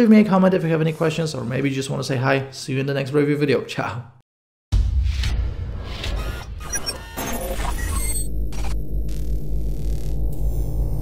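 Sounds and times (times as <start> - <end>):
glitchy electronic blips: 5.8 - 11.0
low drone: 7.5 - 11.0
deep bass rumble: 8.0 - 11.0.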